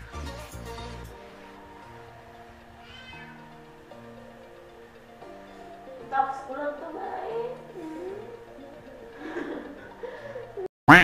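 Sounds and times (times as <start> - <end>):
soft background music: 0.0 - 10.7
cat meowing: 2.7 - 3.5.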